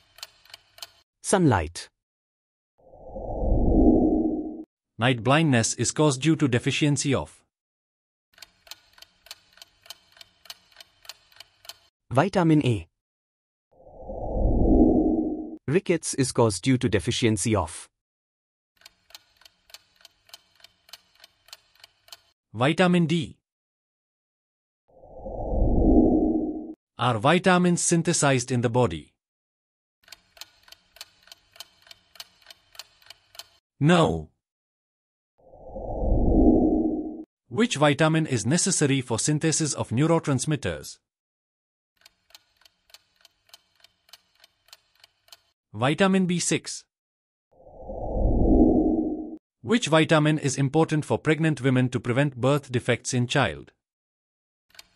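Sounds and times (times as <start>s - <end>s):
clock ticking timer: 0.0s - 1.0s, 8.4s - 11.9s, 18.8s - 22.4s, 30.0s - 33.6s, 42.0s - 45.6s.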